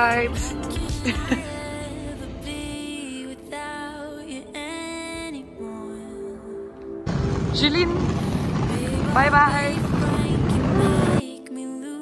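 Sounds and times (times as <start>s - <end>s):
loud rumbling airport noise: 7.1s - 11.2s.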